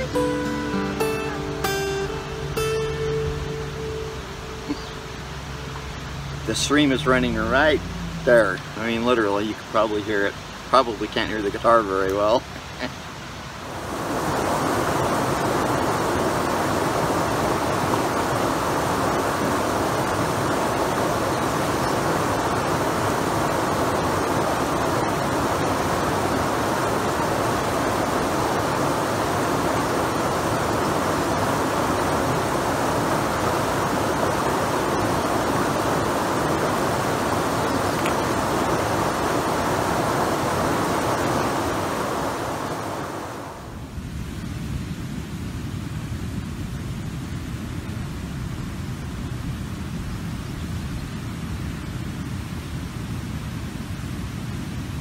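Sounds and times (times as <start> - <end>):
stream rushing over rocks: 0.0 - 55.0.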